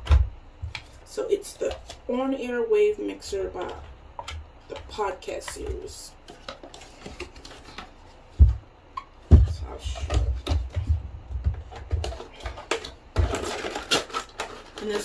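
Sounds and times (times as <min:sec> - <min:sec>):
cardboard scraping and rattling: 0:11.6 - 0:15.0.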